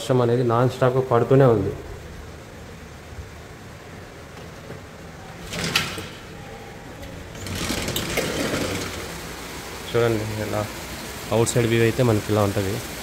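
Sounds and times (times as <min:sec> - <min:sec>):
heavy rain heard through window: 0:00.0 - 0:13.0
sliding window opening: 0:04.2 - 0:09.8.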